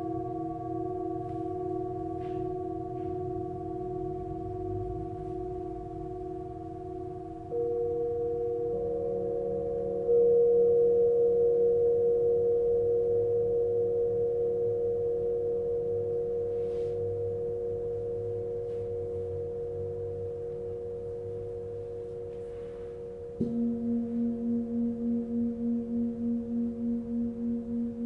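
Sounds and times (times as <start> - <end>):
bowl struck: 0.0 - 28.0
singing bowls ringing: 0.0 - 28.0.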